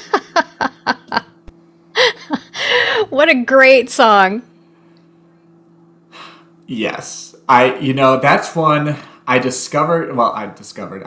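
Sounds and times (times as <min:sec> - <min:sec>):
woman laughing: 0:00.0 - 0:03.2
faint steady hum: 0:00.0 - 0:11.0.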